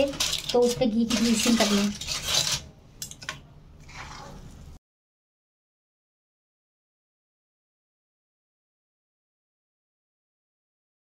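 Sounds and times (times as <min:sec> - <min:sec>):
spoon scraping thick mixture: 0:00.1 - 0:02.7, 0:03.8 - 0:04.8.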